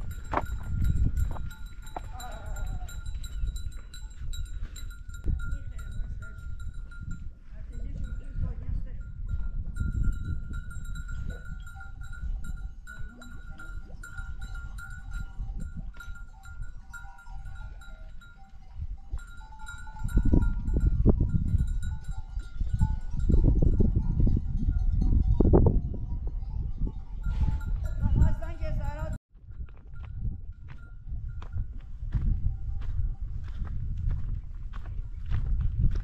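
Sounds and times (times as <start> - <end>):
goat bells ringing and clinking: 0.0 - 34.4.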